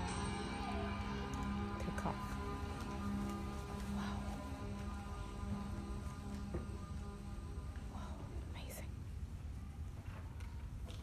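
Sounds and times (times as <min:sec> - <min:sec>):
low room rumble: 0:00.0 - 0:11.0.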